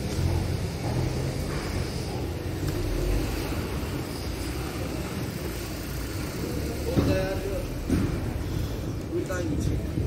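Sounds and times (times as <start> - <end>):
low uneven street rumble: 0.0 - 10.0.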